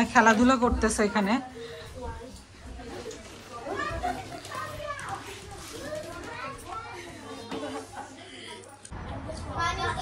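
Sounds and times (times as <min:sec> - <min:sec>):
girls chattering and calling out: 0:00.0 - 0:10.0.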